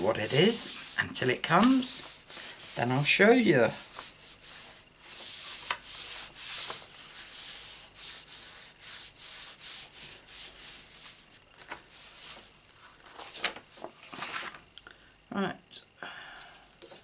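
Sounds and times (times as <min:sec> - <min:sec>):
hands rubbing over paper: 0:00.0 - 0:13.9.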